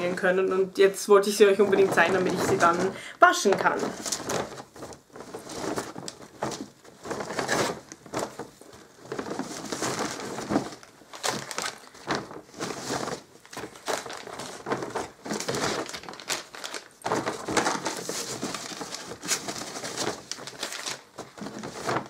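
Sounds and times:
plastic packaging crinkling: 0:01.2 - 0:22.0.

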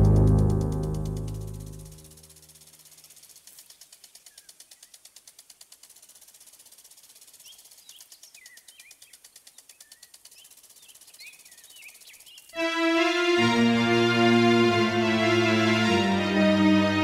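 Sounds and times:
fast high ticking: 0:00.0 - 0:16.7
small birds chirping: 0:00.9 - 0:12.6.

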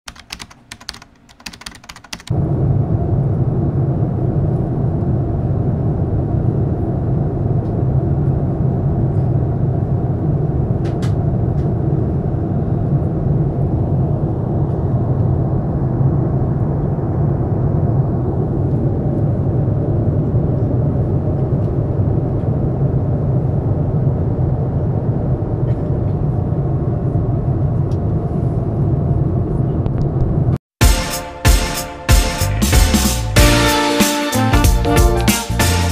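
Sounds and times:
jet airliner cabin noise: 0:00.1 - 0:30.6.

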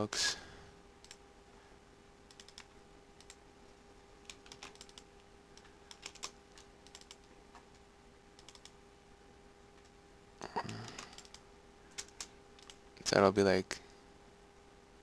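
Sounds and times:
faint steady hum: 0:00.0 - 0:15.0
keyboard keystrokes: 0:02.3 - 0:03.4, 0:04.3 - 0:07.3, 0:08.4 - 0:08.8.

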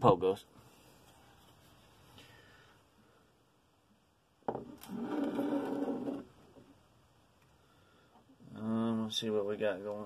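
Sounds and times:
squeaky scraping of object sliding: 0:04.8 - 0:06.3.

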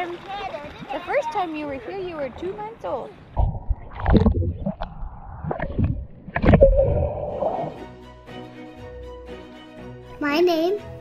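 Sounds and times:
muffled underwater gurgle: 0:03.4 - 0:07.8
music: 0:07.0 - 0:11.0.

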